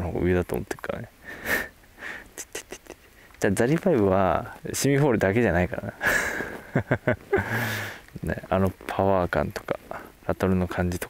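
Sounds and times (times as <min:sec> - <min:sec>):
man laughing through nose: 0:01.5 - 0:03.2, 0:06.0 - 0:08.0.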